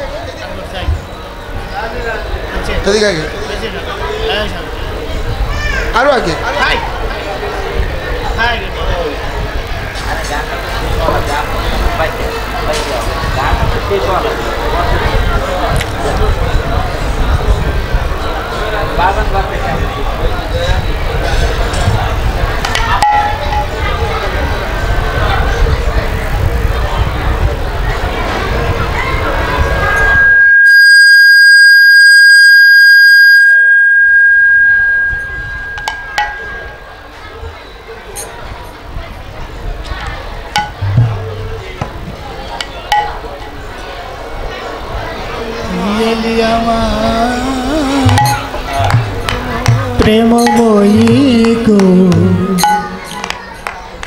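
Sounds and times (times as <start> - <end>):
microphone feedback squeal: 0.8 - 4.4, 29.0 - 38.4, 40.6 - 41.8, 47.7 - 51.1.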